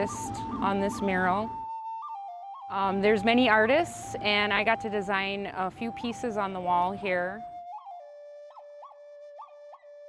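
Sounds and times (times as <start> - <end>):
flute holding a steady note: 0.0 - 10.0.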